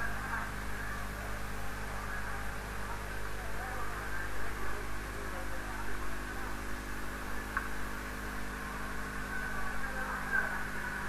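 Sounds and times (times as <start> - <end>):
electrical mains hum with hiss: 0.0 - 11.0.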